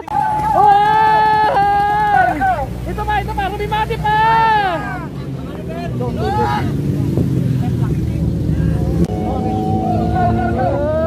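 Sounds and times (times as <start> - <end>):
faint voices: 0.0 - 11.0
vehicle engine humming: 0.0 - 11.0.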